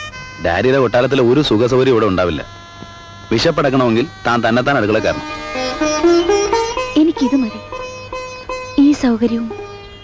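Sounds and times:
steady hum: 0.0 - 10.0
man speaking: 0.4 - 2.5, 3.3 - 5.8.

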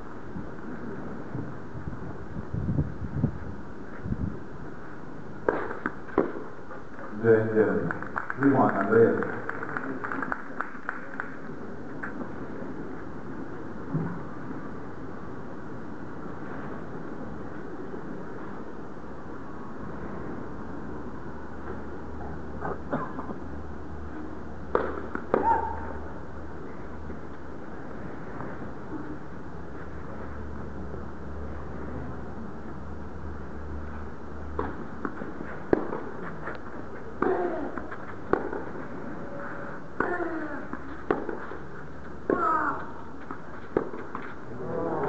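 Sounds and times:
arena hum: 0.0 - 45.0
tennis ball struck by rackets: 5.4 - 6.5, 24.7 - 25.8, 34.6 - 36.1, 37.2 - 38.8, 40.0 - 41.5, 43.7 - 44.3.

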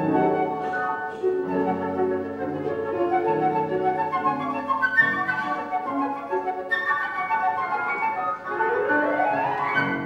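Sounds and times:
flutes playing: 0.0 - 10.0
piano playing: 0.0 - 10.0.

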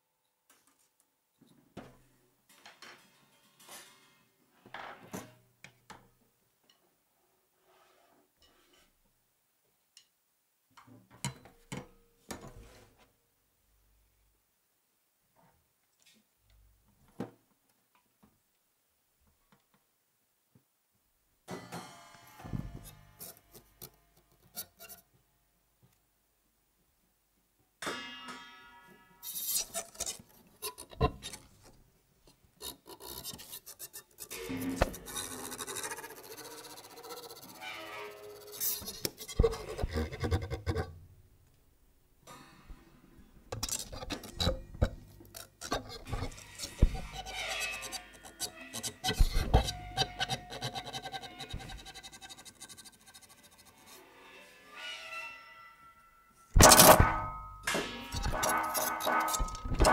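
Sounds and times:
scraping noise: 33.0 - 40.8, 43.6 - 55.4, 56.6 - 59.9.

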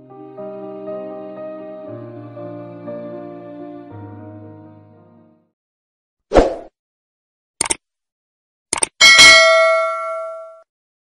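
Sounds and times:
bell ding: 9.0 - 10.7.

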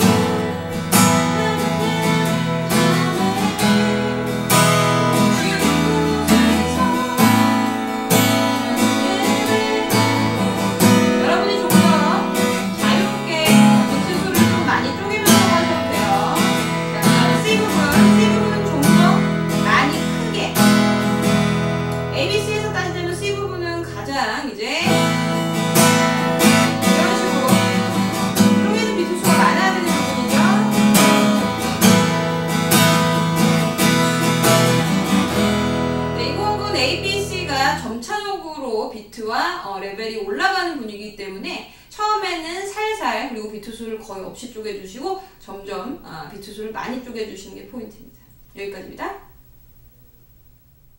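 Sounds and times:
acoustic guitar strummed: 0.0 - 37.9.

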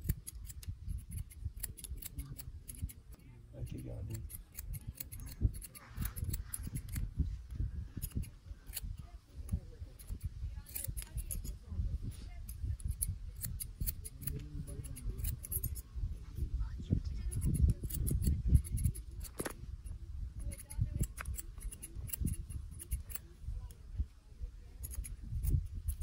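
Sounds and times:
scissors snipping hair: 0.0 - 7.2, 8.0 - 15.8, 17.1 - 19.6, 20.4 - 23.8, 24.8 - 26.0.

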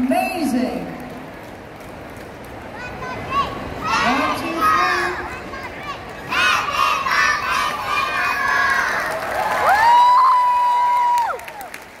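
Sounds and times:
children shouting and cheering: 2.8 - 11.6.

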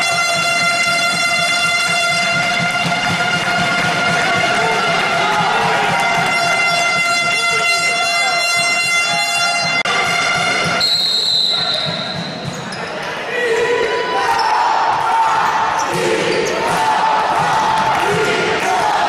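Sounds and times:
music: 0.0 - 12.7
players shouting: 2.4 - 10.9, 11.5 - 19.0
referee's whistle: 5.9 - 12.8.

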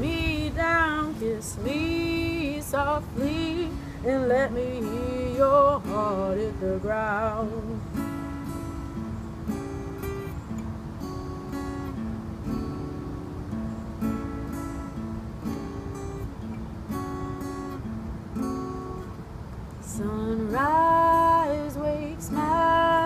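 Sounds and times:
acoustic guitar chords: 0.0 - 23.0.

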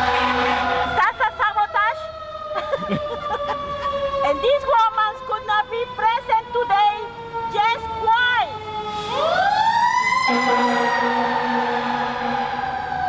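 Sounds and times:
emergency vehicle siren: 0.0 - 13.0.

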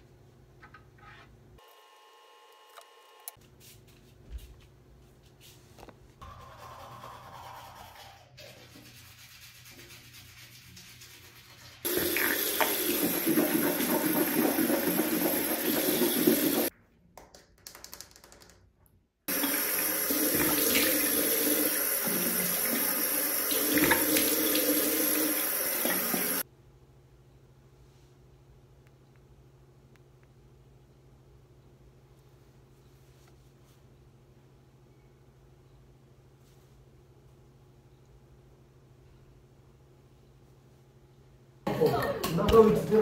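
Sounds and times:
water running from sink tap: 11.5 - 16.7, 19.3 - 26.4.

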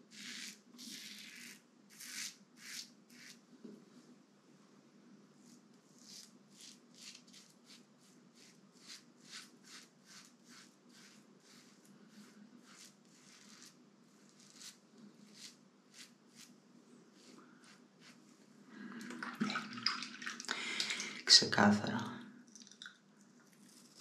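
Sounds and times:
razor scraping stubble: 0.1 - 3.4, 6.0 - 7.8, 8.4 - 16.5.

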